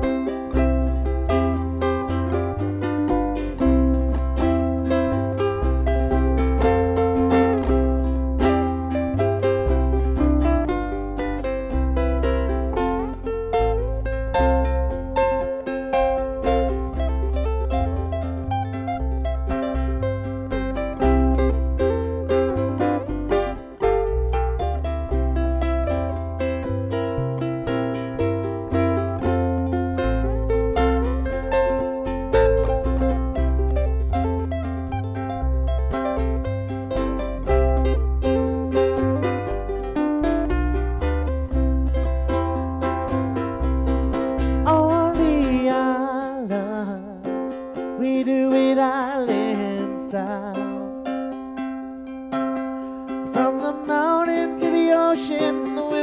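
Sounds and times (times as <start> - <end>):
low bass part: 0.0 - 45.6
ukulele playing: 0.0 - 56.0.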